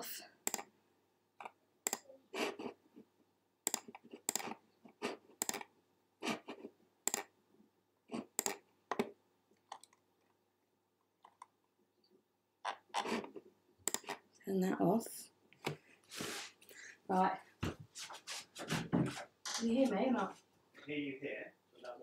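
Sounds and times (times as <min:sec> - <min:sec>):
keyboard and mouse clicking: 0:00.4 - 0:00.7, 0:01.4 - 0:02.1, 0:03.6 - 0:04.6, 0:05.4 - 0:05.7, 0:07.0 - 0:07.3, 0:08.3 - 0:10.0, 0:13.8 - 0:14.2.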